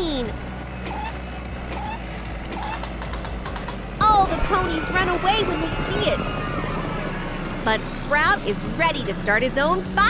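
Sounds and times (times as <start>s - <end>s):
low mechanical rumble: 0.0s - 10.0s
electronic music: 3.9s - 9.7s.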